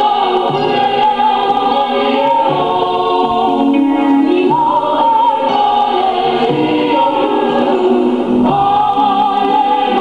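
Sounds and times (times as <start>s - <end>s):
group singing long held notes: 0.0s - 10.0s.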